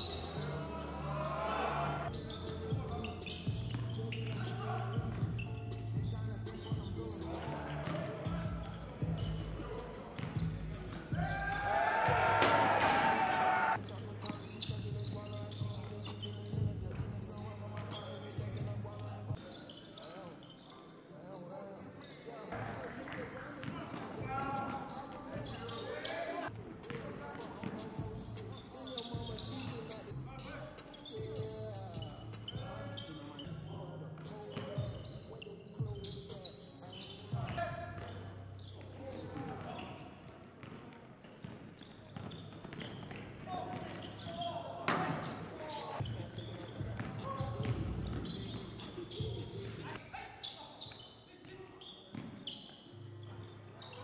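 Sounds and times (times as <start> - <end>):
players calling out: 0.0 - 19.4
basketballs bouncing on wooden floor: 10.1 - 11.5, 40.6 - 45.3, 46.8 - 49.8.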